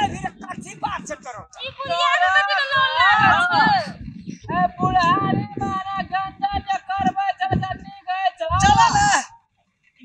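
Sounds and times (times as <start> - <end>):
low talking: 0.0 - 9.4
high-pitched singing voice: 4.5 - 9.3.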